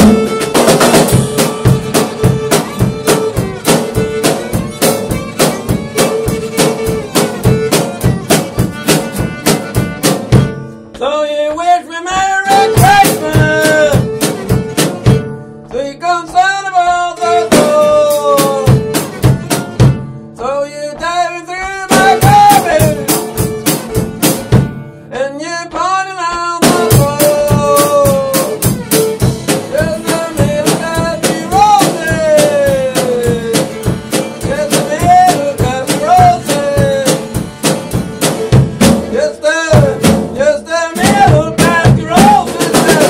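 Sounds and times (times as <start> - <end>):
drum kit played rapidly: 0.0 - 10.7, 12.2 - 15.5, 17.2 - 20.2, 21.6 - 24.9, 26.5 - 43.0
violin melody: 0.0 - 10.9, 12.5 - 15.7, 16.9 - 20.2, 21.9 - 25.1, 26.8 - 39.2.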